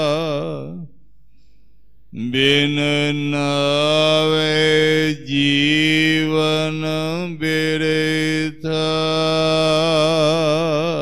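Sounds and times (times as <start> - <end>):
man chanting in held notes: 0.0 - 0.9, 2.2 - 11.0.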